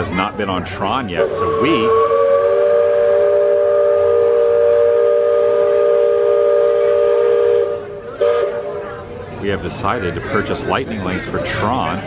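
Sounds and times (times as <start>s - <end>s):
steam whistle blast: 1.2s - 8.9s.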